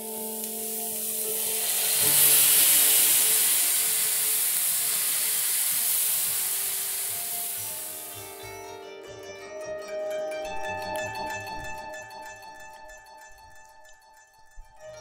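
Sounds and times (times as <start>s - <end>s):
meat sizzling in a frying pan: 0.0s - 8.2s
faint sustained musical tones: 0.0s - 15.0s.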